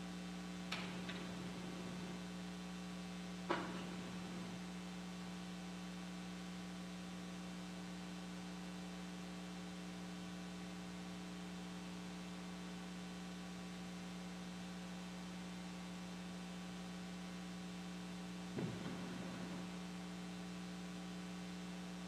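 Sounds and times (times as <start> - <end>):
faint mains electrical hum: 0.0 - 22.0.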